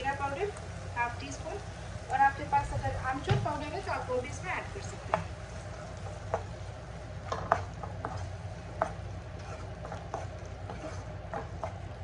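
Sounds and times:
spatula stirring food in a pan: 0:03.6 - 0:12.0
spatula knocking and scraping pan: 0:07.2 - 0:12.0.

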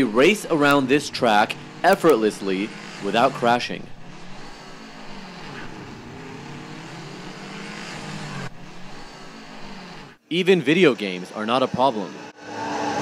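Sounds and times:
go-kart engines running: 0:00.0 - 0:10.2.

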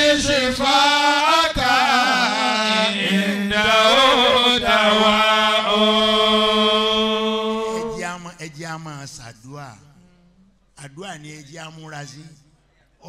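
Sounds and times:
man chanting into microphone: 0:00.0 - 0:09.8.

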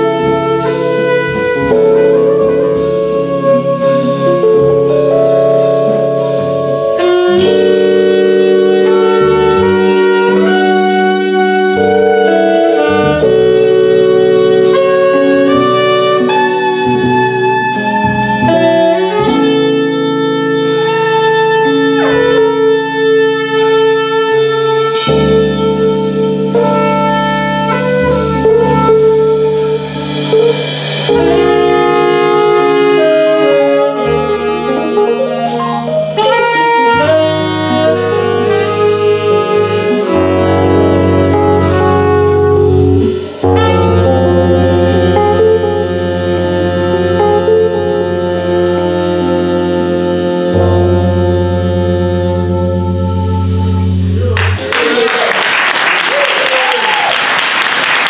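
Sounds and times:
drum kit with cymbals: 0:00.0 - 0:55.1
upright bass: 0:00.0 - 0:55.5
electric piano: 0:00.0 - 0:58.0
saxophone and trumpet melody: 0:00.0 - 0:58.0.

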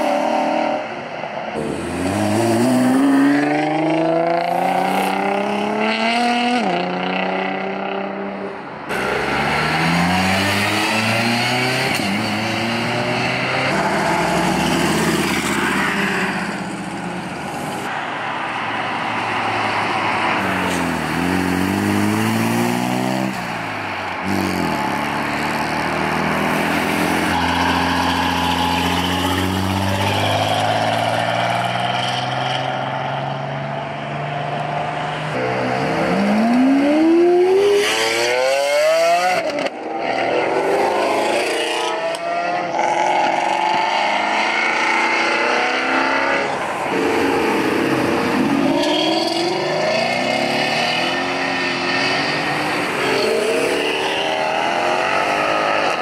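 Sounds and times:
performance car engines revving: 0:00.0 - 0:56.0
sports car accelerating hard: 0:01.6 - 0:17.8, 0:34.5 - 0:56.0.

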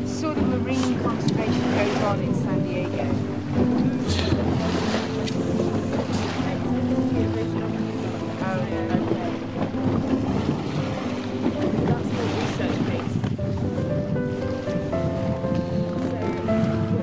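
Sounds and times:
boat engine hum: 0:00.0 - 0:17.0
water wash: 0:00.0 - 0:17.0
wind buffeting microphone: 0:00.0 - 0:17.0.

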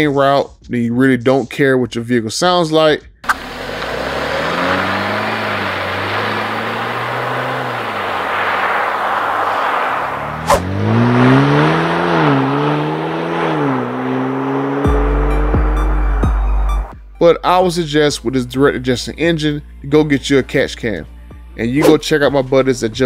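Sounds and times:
car engine accelerating: 0:03.2 - 0:17.0.

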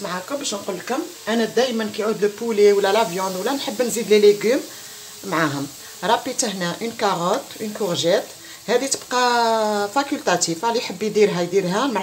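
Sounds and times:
vegetables sizzling in a pan: 0:00.0 - 0:12.0
person talking: 0:05.2 - 0:12.0.

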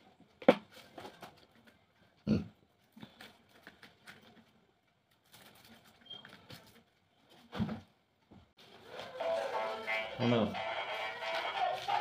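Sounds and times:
paper rustling and crinkling: 0:02.8 - 0:07.6, 0:10.8 - 0:12.0.

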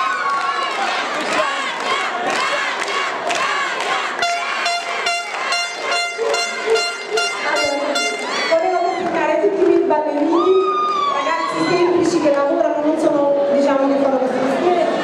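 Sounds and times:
audience cheering and shouting: 0:00.0 - 0:09.3, 0:10.2 - 0:12.3
air horn short blasts: 0:04.2 - 0:08.4.

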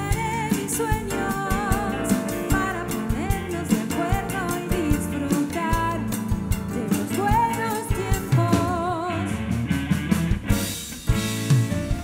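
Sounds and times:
pop-rock band playing: 0:00.0 - 0:12.0.

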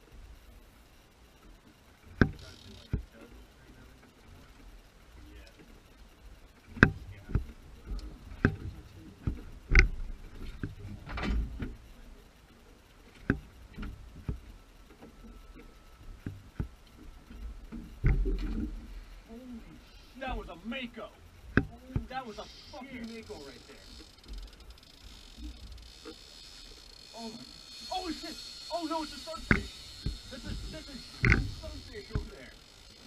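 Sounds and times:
low steady background: 0:00.0 - 0:33.0.

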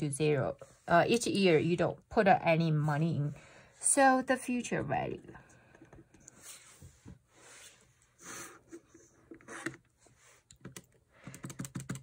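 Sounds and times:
calculator keys clicking: 0:10.6 - 0:12.0.

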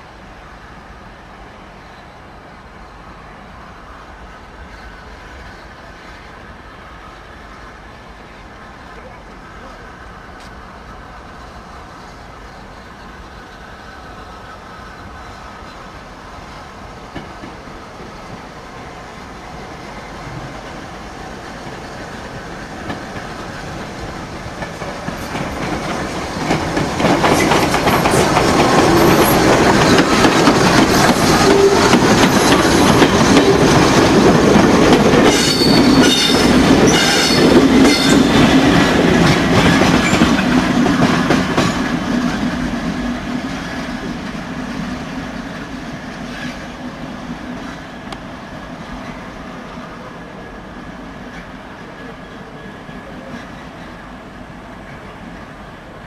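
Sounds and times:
steam train passing: 0:00.0 - 0:56.0
wheels clicking over rail joints: 0:20.4 - 0:44.4
wheel flanges squealing: 0:35.2 - 0:38.8.

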